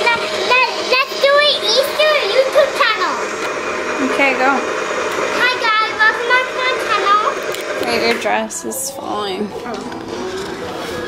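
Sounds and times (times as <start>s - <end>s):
steady whirring noise: 0.0s - 11.0s.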